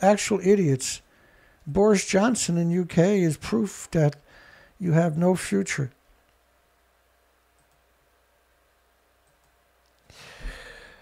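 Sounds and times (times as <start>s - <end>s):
man breathing in close to microphone: 4.3s - 4.8s, 10.1s - 11.0s.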